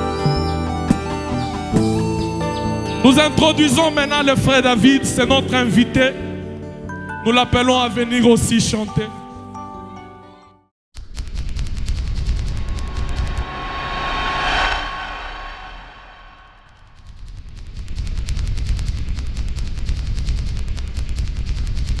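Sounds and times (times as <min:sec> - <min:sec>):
shimmering whoosh: 0:12.5 - 0:16.7.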